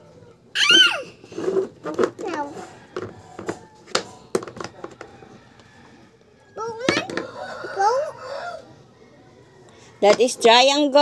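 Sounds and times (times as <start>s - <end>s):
rooster crowing: 5.0s - 9.9s.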